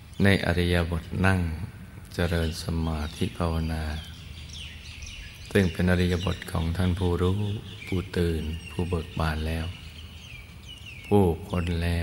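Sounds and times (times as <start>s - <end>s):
birds chirping: 0.0s - 12.0s
man speaking: 0.2s - 4.1s, 5.5s - 9.8s, 11.1s - 12.0s.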